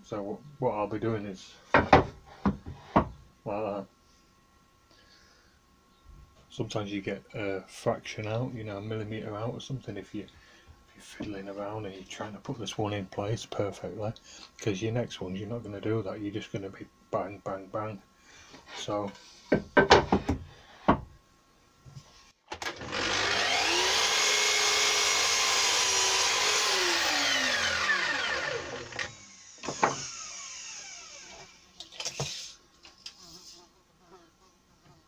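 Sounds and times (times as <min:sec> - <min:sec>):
mitre saw running: 0:22.6 - 0:31.6.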